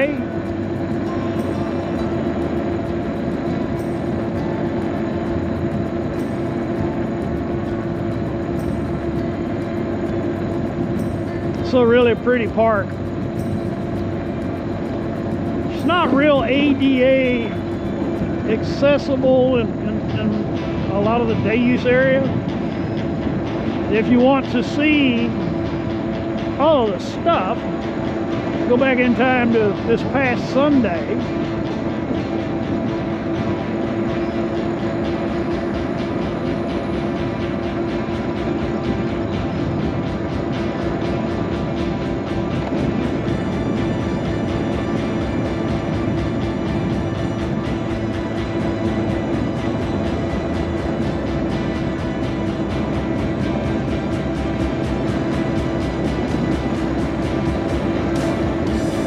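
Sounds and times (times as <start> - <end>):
mobility scooter motor hum: 0.0 - 59.0.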